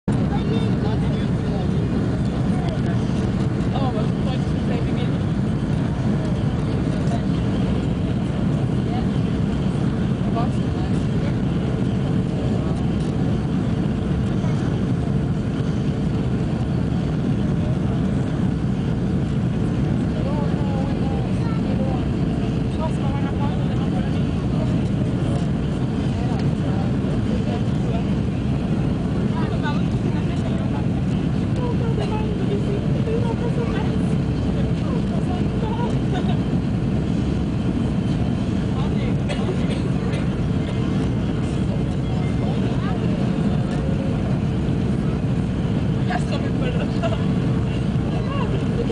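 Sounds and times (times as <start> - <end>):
jet engine cabin rumble: 0.0 - 48.9
faint passenger voices: 0.1 - 48.9.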